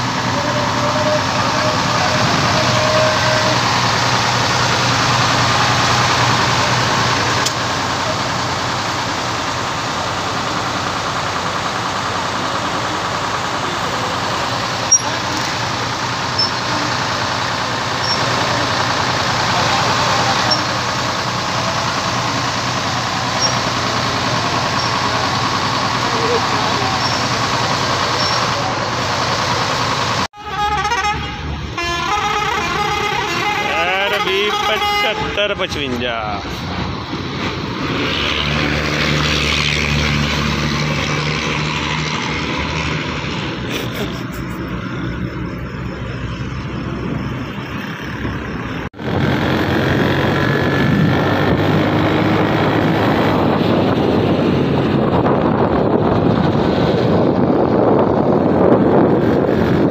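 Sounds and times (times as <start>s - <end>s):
horn toots: 0.0s - 3.8s, 30.4s - 35.9s
people's voices: 0.0s - 30.2s, 33.4s - 36.9s, 43.6s - 44.9s
coach engine running: 0.0s - 59.9s
vehicle passing on road: 0.0s - 59.9s.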